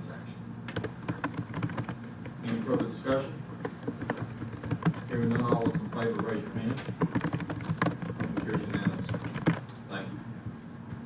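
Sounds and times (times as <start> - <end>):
laptop keyboard clicks: 0.7 - 2.9, 3.6 - 9.6.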